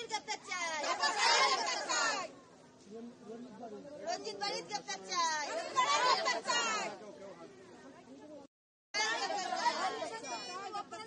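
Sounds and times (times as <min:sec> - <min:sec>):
women shouting slogans: 0:00.0 - 0:02.3, 0:05.4 - 0:06.9, 0:09.0 - 0:11.0.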